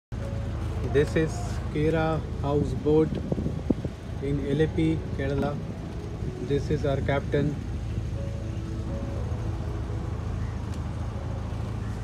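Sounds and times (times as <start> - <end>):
boat diesel engine droning: 0.1 - 12.0.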